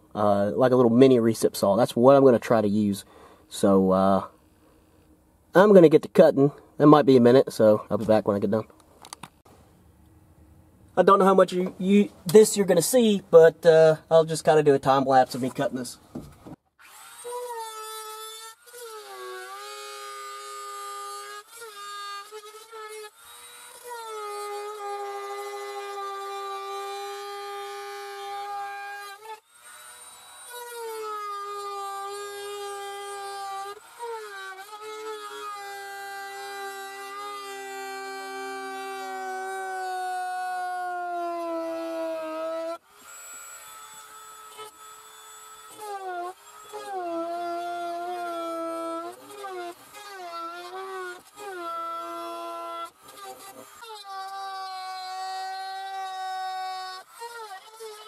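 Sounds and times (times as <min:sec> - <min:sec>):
power tool cutting plastic: 0:15.4 - 0:58.0.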